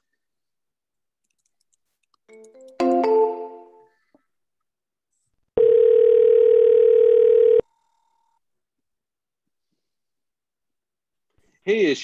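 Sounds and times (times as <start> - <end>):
telephone ringback tone: 5.6 - 7.7.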